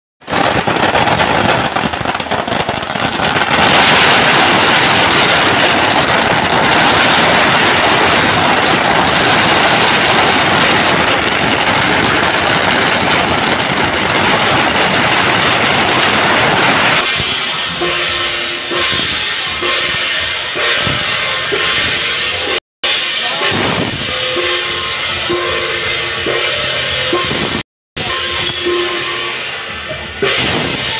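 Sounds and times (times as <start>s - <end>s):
firecrackers crackling: 0.2s - 30.9s.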